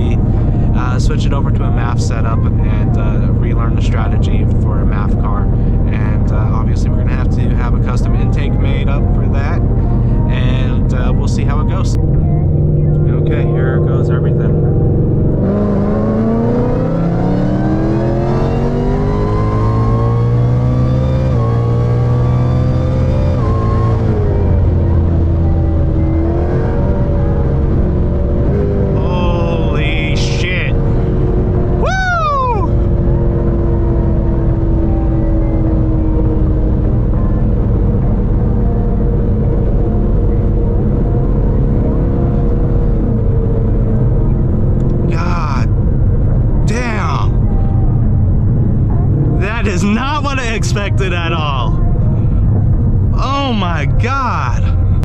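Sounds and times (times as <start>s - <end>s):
car engine at full throttle: 0.0s - 55.0s.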